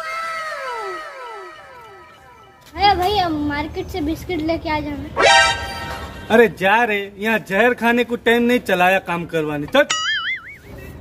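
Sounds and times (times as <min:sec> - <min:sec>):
comedy downward-sliding tone: 0:00.2 - 0:02.7, 0:05.2 - 0:06.2.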